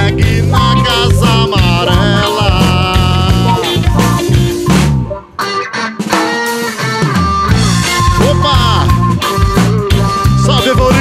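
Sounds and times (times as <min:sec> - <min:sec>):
electric guitar: 0:00.0 - 0:11.0
reggae band playing: 0:00.0 - 0:11.0.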